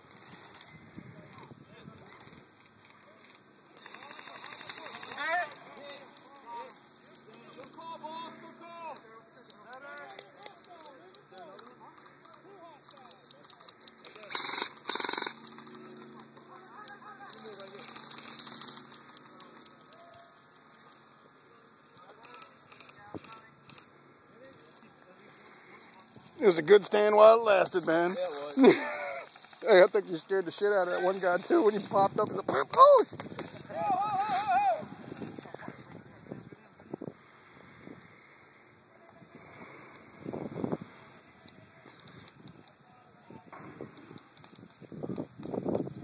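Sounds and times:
distant voices calling out: 0.0 - 46.0
sharp pops and clicks: 8.9 - 21.0
burst of noise: 14.1 - 16.2.

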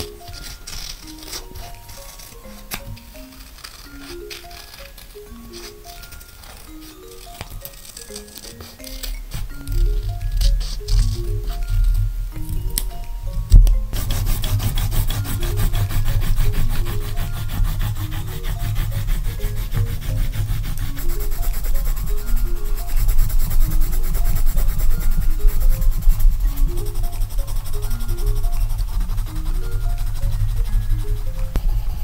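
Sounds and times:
pencil scribbling on paper: 0.0 - 12.0, 13.9 - 32.0.

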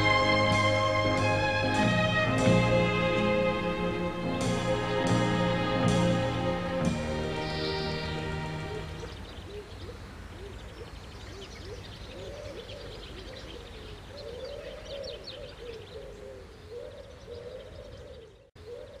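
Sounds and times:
low arching bird calls: 7.2 - 19.0.

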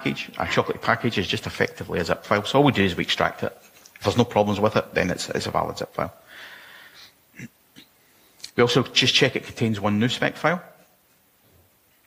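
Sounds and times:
man speaking: 0.0 - 6.3, 8.4 - 10.8
man breathing in: 6.2 - 7.2.

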